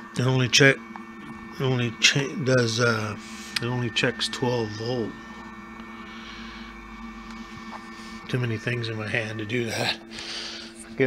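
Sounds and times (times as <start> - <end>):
battery charger electrical hum: 0.0 - 11.0
faint high tones: 0.0 - 11.0.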